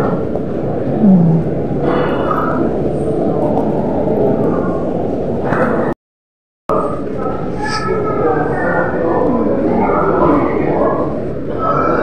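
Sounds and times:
distant voices: 0:06.7 - 0:12.0.

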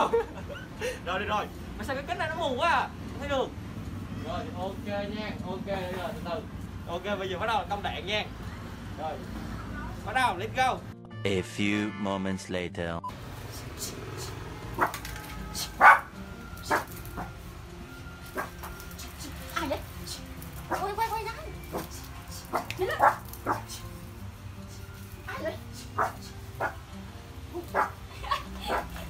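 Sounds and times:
small dog barking sharply: 0:14.8 - 0:15.0, 0:15.6 - 0:16.1, 0:22.5 - 0:23.7, 0:27.7 - 0:28.0.

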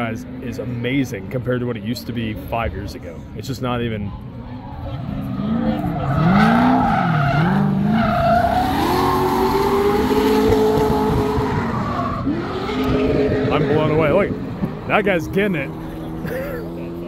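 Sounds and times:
tyres skidding: 0:04.3 - 0:17.0
car engine revving: 0:04.4 - 0:17.0.

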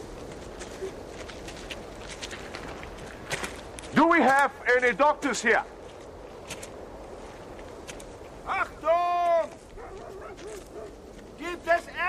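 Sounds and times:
dog barking: 0:09.8 - 0:11.0.

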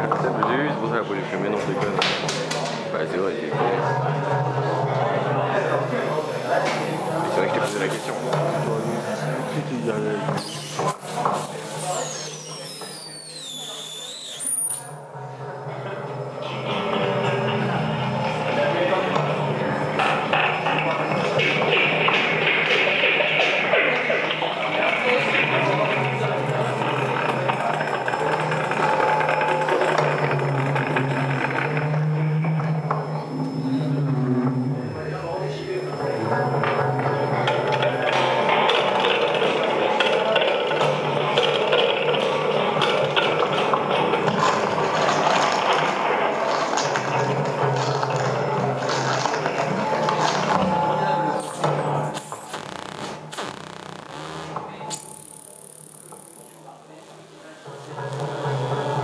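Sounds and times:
low drone: 0:25.1 - 0:39.2.

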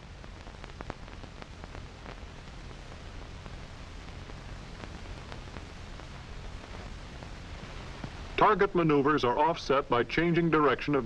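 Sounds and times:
faint crackles and clicks: 0:00.0 - 0:11.0
film soundtrack hiss: 0:00.0 - 0:11.0
low hum: 0:00.0 - 0:11.0.

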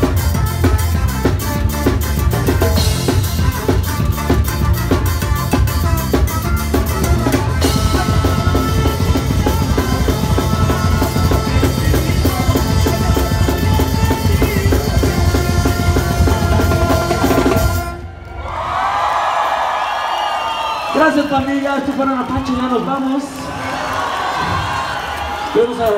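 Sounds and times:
ska band playing: 0:00.0 - 0:18.2
crowd cheering and whistling: 0:17.0 - 0:25.9.

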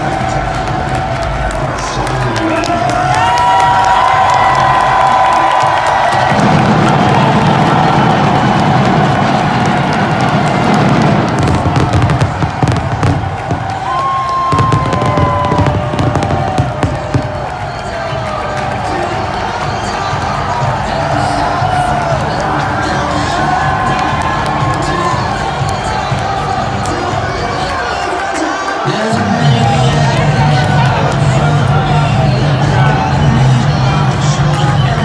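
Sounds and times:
loud music over pa: 0:00.0 - 0:35.0
stadium crowd cheering: 0:00.0 - 0:35.0.

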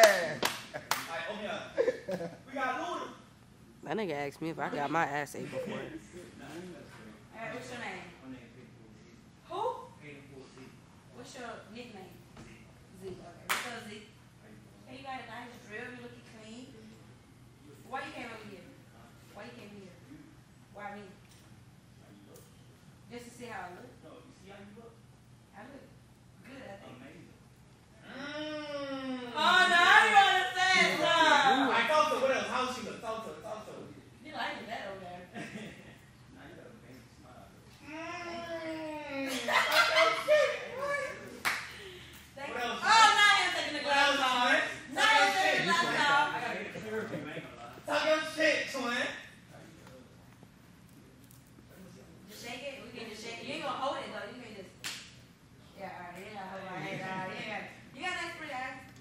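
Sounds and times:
hand clap: 0:00.0 - 0:01.2, 0:13.5 - 0:13.8, 0:41.4 - 0:41.8, 0:54.8 - 0:55.2
people laughing: 0:00.0 - 0:02.5, 0:39.2 - 0:41.3, 0:45.2 - 0:47.6
sharp clap or slap: 0:54.8 - 0:55.1.

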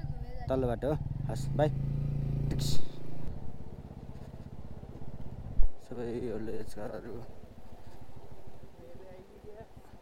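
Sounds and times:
motorcycle engine at low revs: 0:00.0 - 0:08.8.

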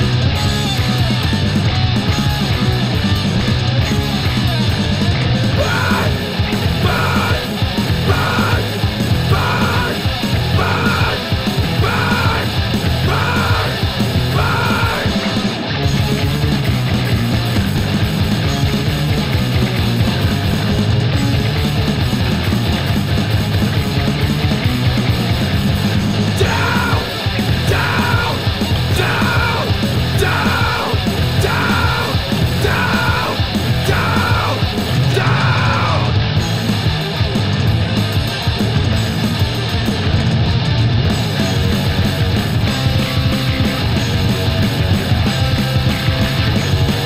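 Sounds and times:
metal band playing: 0:00.0 - 0:47.0
person shouting vocals: 0:05.5 - 0:15.2, 0:26.4 - 0:36.2.

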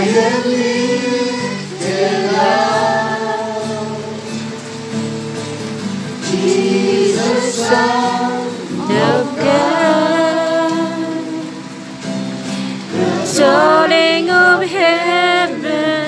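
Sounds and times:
sustained accompaniment: 0:00.0 - 0:12.0
group singing worship song: 0:00.0 - 0:16.0.

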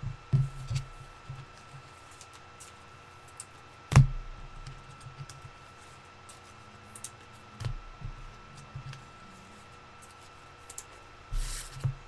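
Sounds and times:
faint steady whine: 0:00.0 - 0:12.0.

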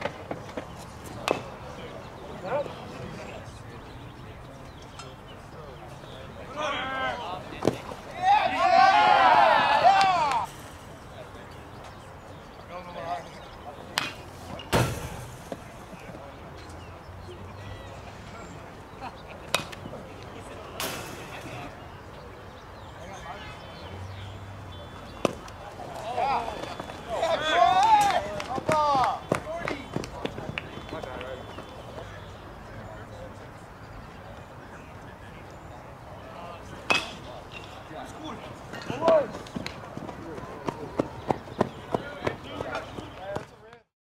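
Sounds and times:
baseball impact crack: 0:00.0 - 0:01.5, 0:07.6 - 0:08.0, 0:13.9 - 0:16.2, 0:19.5 - 0:20.0, 0:25.1 - 0:27.0, 0:36.8 - 0:37.8
bat striking ball crack: 0:25.2 - 0:25.6, 0:36.9 - 0:37.8.

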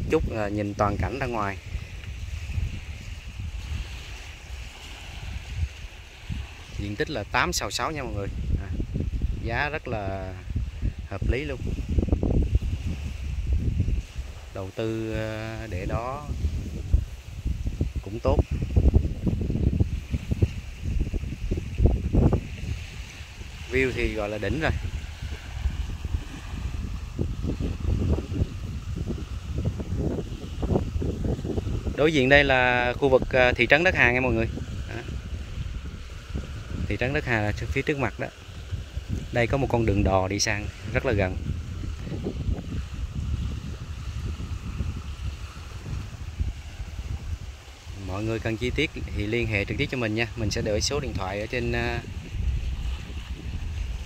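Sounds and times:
waves hissing on shore: 0:00.0 - 0:54.0
wind buffeting microphone: 0:00.0 - 0:54.0.

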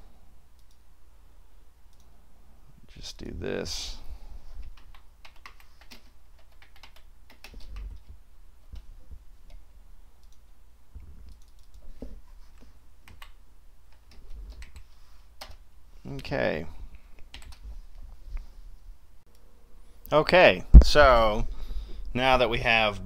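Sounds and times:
typing on a computer keyboard: 0:04.6 - 0:08.2, 0:11.3 - 0:11.9, 0:13.0 - 0:15.6, 0:17.2 - 0:17.6.

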